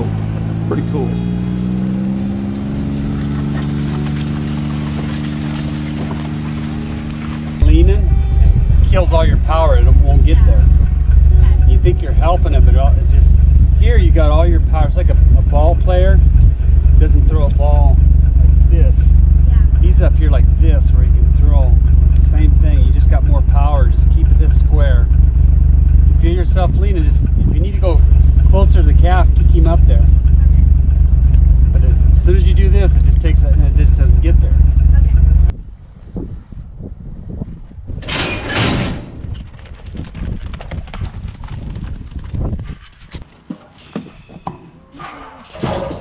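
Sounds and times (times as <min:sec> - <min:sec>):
man talking: 0:00.0 - 0:01.3, 0:07.6 - 0:08.1, 0:08.7 - 0:10.7, 0:11.6 - 0:16.2, 0:17.0 - 0:18.0, 0:18.6 - 0:19.1, 0:19.8 - 0:25.1, 0:26.1 - 0:30.1, 0:31.7 - 0:34.6
low rumble: 0:00.0 - 0:43.2
hoofbeats on dirt: 0:02.9 - 0:09.2, 0:38.9 - 0:44.7
metal chute clattering: 0:38.0 - 0:39.4.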